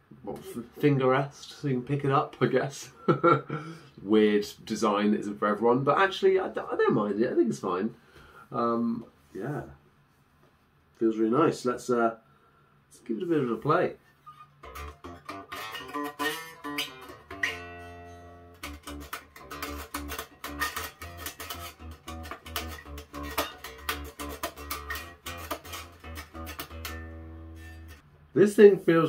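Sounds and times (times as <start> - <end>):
unplugged electric bass plucked: 14.6 - 28.0.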